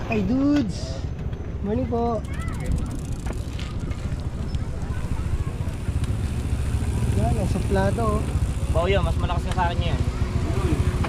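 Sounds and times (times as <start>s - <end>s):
road noise: 0.0s - 11.0s.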